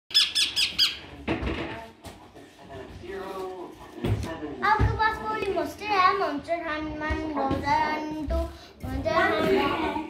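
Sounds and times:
parakeets squawking: 0.1 - 1.1.

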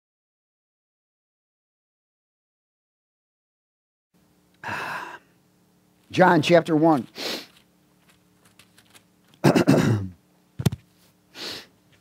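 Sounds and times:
man speaking: 6.1 - 7.2
man's quick intake of breath: 7.1 - 7.6, 11.3 - 11.8.

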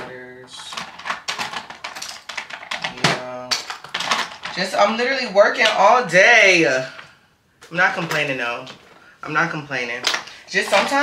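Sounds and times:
plastic makeup containers clicking: 0.6 - 4.7, 9.9 - 11.0.

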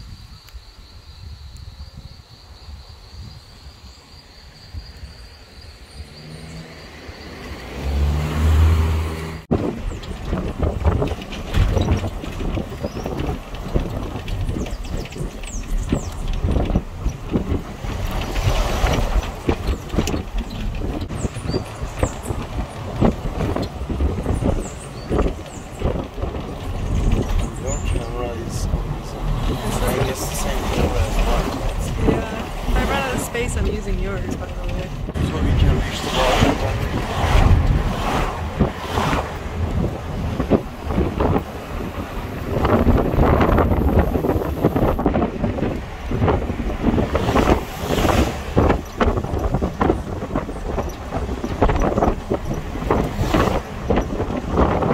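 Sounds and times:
car engine and road noise: 0.0 - 54.9.

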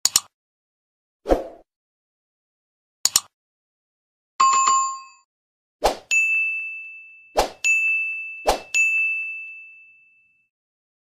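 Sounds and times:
bell-like dings: 4.4 - 5.3, 6.1 - 10.5.

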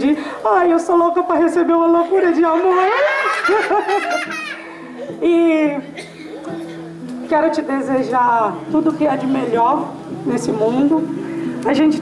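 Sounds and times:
woman laughing into microphone: 2.5 - 5.2.

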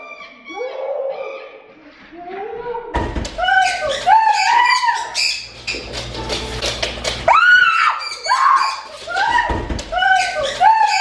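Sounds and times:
woman screaming: 3.4 - 5.2, 7.3 - 11.0.

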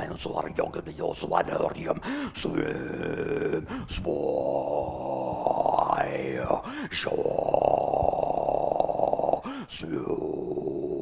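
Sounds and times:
man making rough droning sounds: 2.5 - 11.0.

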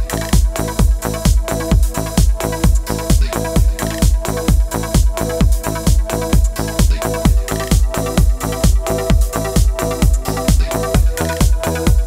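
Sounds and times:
electronic dance music: 0.0 - 12.0
heavy bass-drum beat: 0.0 - 12.0.

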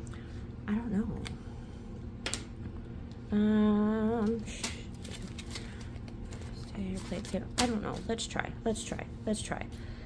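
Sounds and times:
paper bills rustling: 4.5 - 8.2.

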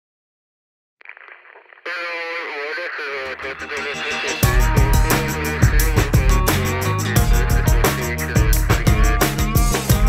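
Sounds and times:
radio-like singing voice: 1.0 - 10.0.

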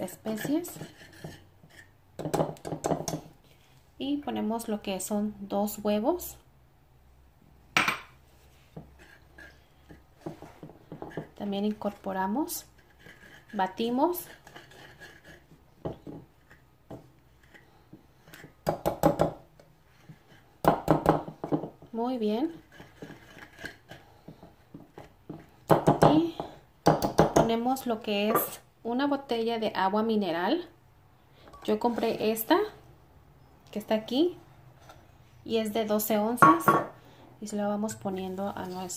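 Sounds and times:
whisk scraping in clay bowl: 0.0 - 2.0, 8.8 - 16.7, 22.5 - 25.4.

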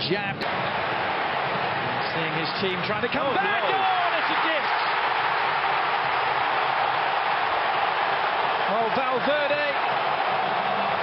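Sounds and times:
stadium crowd cheering: 0.3 - 11.0.

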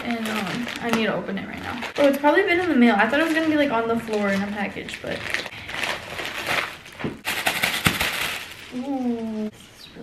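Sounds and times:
plastic crackles: 0.0 - 9.5
plastic packaging crinkling: 0.0 - 9.5.

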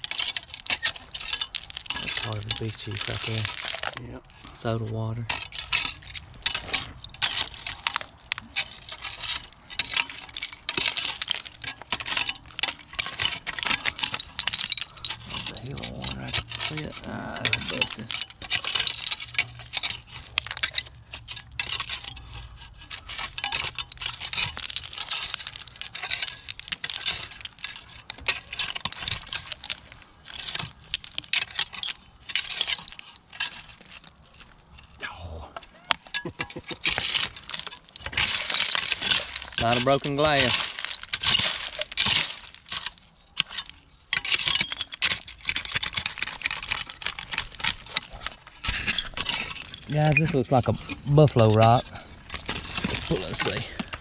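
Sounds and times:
rake scraping through soil: 0.0 - 30.8, 36.3 - 54.0.

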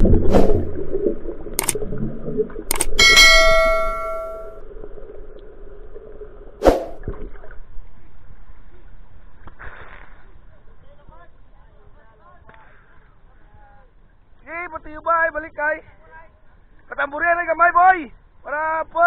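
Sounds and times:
notification bell chime: 3.0 - 4.5.

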